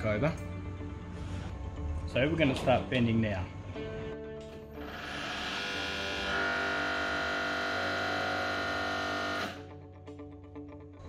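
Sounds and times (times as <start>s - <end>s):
guitar music: 1.7s - 11.0s
hydraulic bending machine running: 4.7s - 9.7s.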